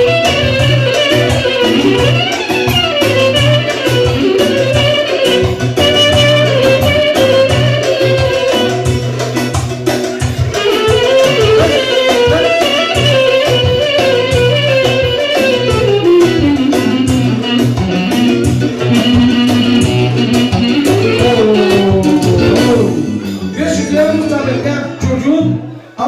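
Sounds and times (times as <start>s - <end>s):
live band dance music: 0.0s - 25.8s.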